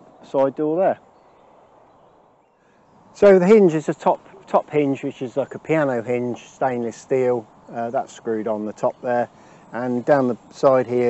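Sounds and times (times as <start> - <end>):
bird chirp: 0.0 - 11.0
garden ambience: 0.0 - 11.0.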